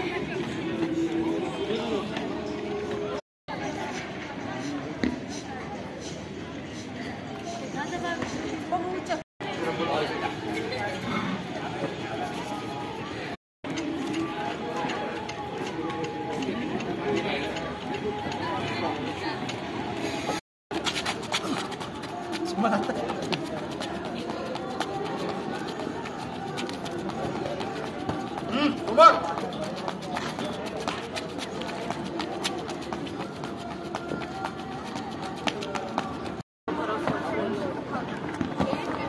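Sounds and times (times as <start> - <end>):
people talking and calling out: 0.0 - 39.0.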